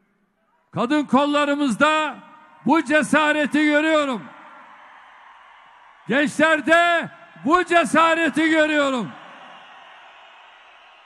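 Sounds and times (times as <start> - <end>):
crowd noise in arena: 0.0 - 11.0
amplified voice echo: 0.8 - 4.4, 6.1 - 9.2.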